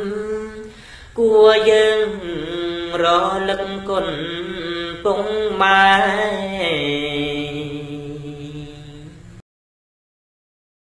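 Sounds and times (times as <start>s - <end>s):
solo voice chanting: 0.0s - 9.4s.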